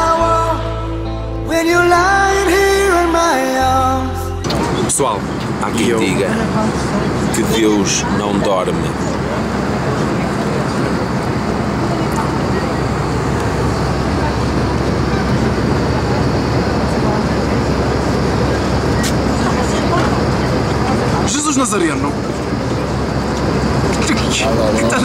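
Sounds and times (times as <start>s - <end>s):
low hum: 0.0s - 25.0s
vehicle cabin drone: 0.0s - 25.0s.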